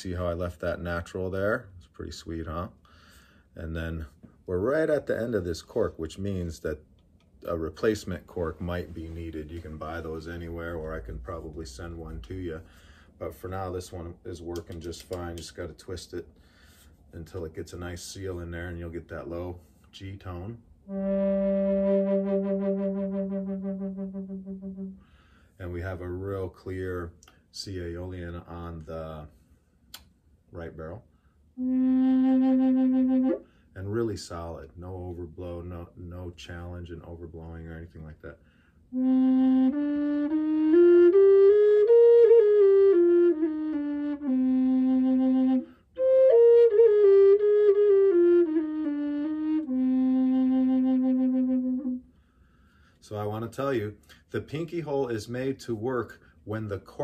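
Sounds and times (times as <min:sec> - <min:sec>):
low drone flute note: 0:20.9 - 0:25.0, 0:31.6 - 0:33.5, 0:39.0 - 0:52.0.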